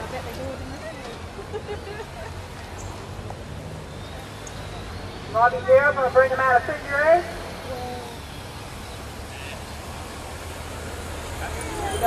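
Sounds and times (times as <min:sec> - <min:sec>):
motorcycle engines rumbling: 0:00.0 - 0:12.0.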